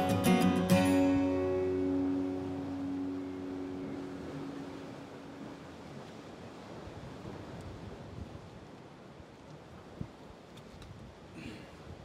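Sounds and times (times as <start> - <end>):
guitar chord ringing: 0.0 - 5.8
sea surf: 0.0 - 12.0
wind: 0.0 - 12.0.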